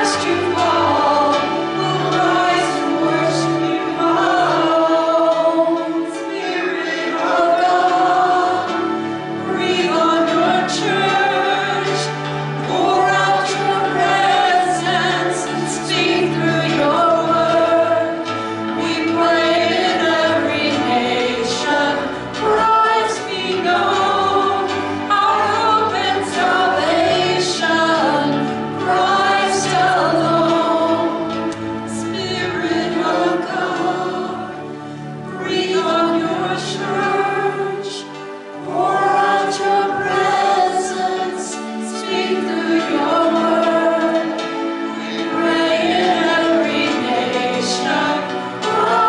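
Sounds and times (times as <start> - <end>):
women singing worship song: 0.0 - 49.0.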